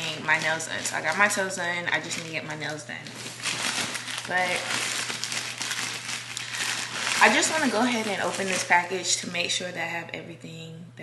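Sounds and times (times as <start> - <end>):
package wrapping crinkling: 0.0 - 9.2.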